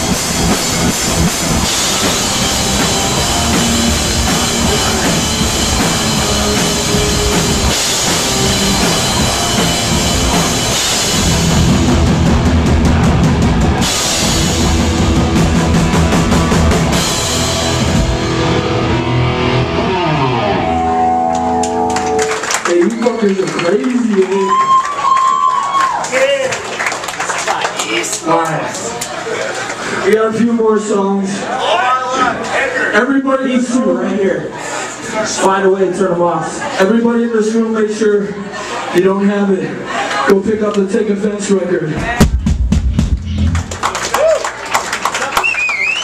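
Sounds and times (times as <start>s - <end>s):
pounding drums: 0.0s - 18.7s, 41.9s - 43.9s
distorted guitars: 0.0s - 22.5s, 42.0s - 43.9s
punk band playing live: 0.0s - 23.1s, 41.9s - 46.0s
crowd clapping: 21.2s - 30.0s, 43.1s - 46.0s
man speaking into microphone: 22.6s - 24.5s, 39.0s - 42.2s.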